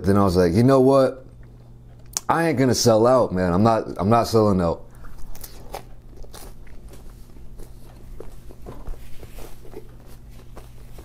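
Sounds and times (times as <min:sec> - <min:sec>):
chewing bread: 0:04.9 - 0:11.0.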